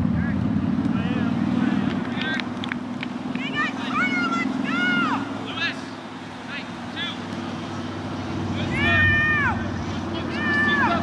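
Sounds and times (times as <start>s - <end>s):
people shouting and calling: 3.2s - 7.4s, 8.4s - 11.0s.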